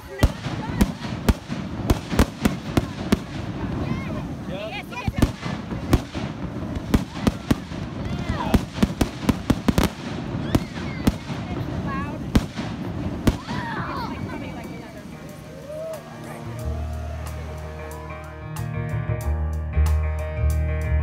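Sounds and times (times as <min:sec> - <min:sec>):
fireworks bangs: 0:00.0 - 0:16.4
faint onlooker voices: 0:00.0 - 0:19.6.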